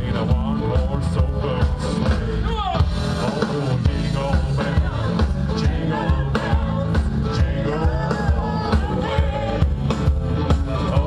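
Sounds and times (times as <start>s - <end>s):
live rock blues band: 0.0s - 11.0s.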